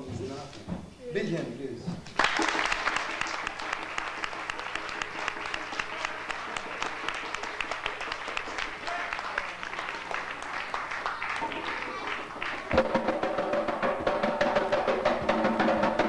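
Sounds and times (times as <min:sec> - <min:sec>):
audience applauding: 0:02.1 - 0:13.7.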